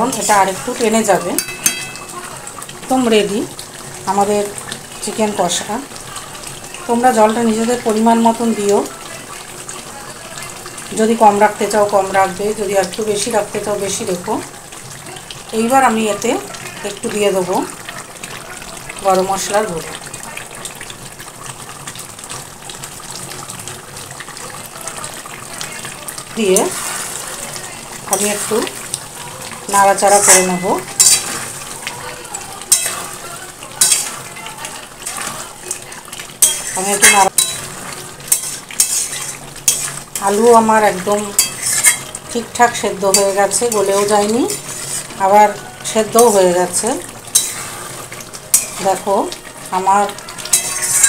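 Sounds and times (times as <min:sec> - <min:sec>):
metal spatula scraping pot: 0:00.0 - 0:02.2, 0:26.4 - 0:29.0, 0:29.6 - 0:31.8, 0:32.6 - 0:49.2, 0:49.9 - 0:51.0
curry sizzling and bubbling: 0:00.0 - 0:51.0.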